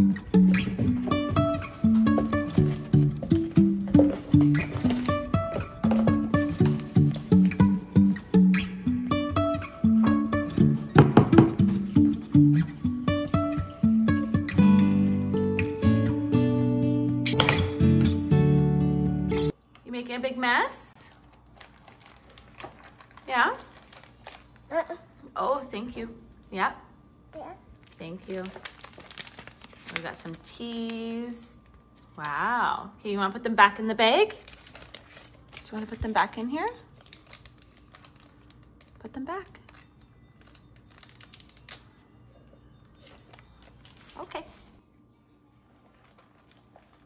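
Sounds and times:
plastic bag crinkling: 0:00.5 - 0:07.7, 0:21.0 - 0:25.0, 0:27.4 - 0:32.4, 0:34.2 - 0:42.0, 0:42.8 - 0:44.8, 0:45.7 - 0:47.0
paper packets crinkling: 0:00.6 - 0:07.7, 0:21.1 - 0:25.0, 0:27.8 - 0:32.4, 0:34.3 - 0:42.0, 0:42.9 - 0:44.8, 0:45.7 - 0:47.0.

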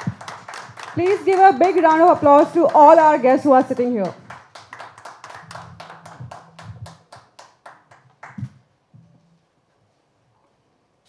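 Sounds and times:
audience clapping: 0:00.0 - 0:08.7.

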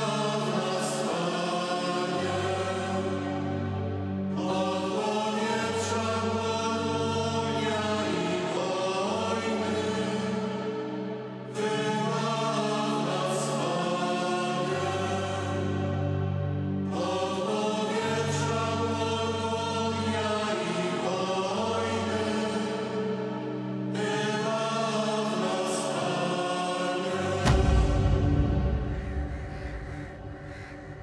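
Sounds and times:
mixed choir singing a hymn: 0:00.0 - 0:31.0.

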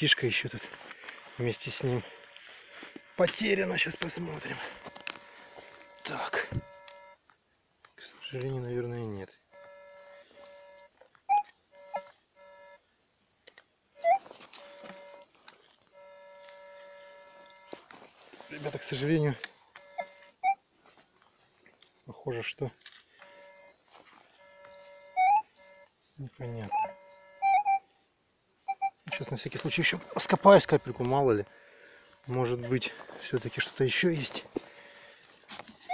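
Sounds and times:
metal detector beeping: 0:01.1 - 0:07.2, 0:09.5 - 0:12.8, 0:14.0 - 0:15.3, 0:15.9 - 0:20.6, 0:23.2 - 0:27.9, 0:28.6 - 0:33.3
rising chirps: 0:24.4 - 0:25.9, 0:26.7 - 0:27.8.

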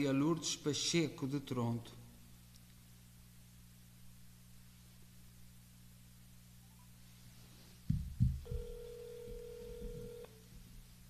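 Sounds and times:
phone handling knocks: 0:07.9 - 0:10.2
telephone ringback tone: 0:08.4 - 0:10.4.

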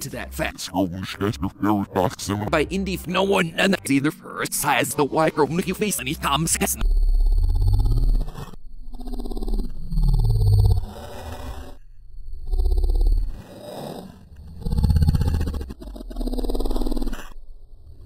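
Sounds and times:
deep distorted growling: 0:05.4 - 0:18.0.

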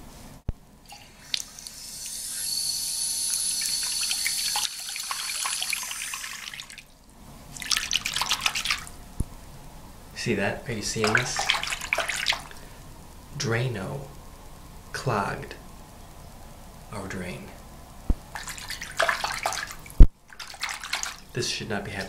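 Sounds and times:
water splashing: 0:00.9 - 0:02.6, 0:03.3 - 0:09.0, 0:10.9 - 0:12.6, 0:18.2 - 0:22.0.

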